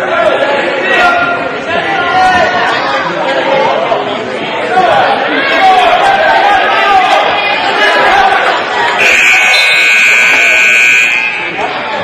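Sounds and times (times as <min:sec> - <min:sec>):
spectators chatting: 0:00.0 - 0:12.0
scoreboard buzzer long tone: 0:09.0 - 0:11.6.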